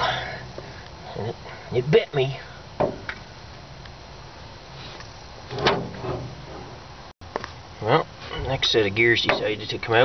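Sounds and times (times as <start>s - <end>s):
steady low hum: 0.0s - 10.0s
short metallic scrape: 4.8s - 6.8s.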